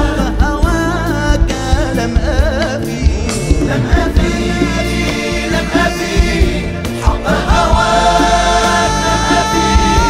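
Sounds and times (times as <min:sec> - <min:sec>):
steady percussion beats: 0:00.0 - 0:10.0
ensemble accompaniment: 0:01.9 - 0:10.0.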